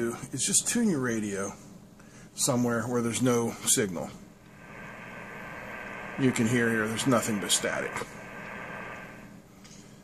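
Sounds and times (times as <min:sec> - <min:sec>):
radio static hiss: 0:03.4 - 0:09.4.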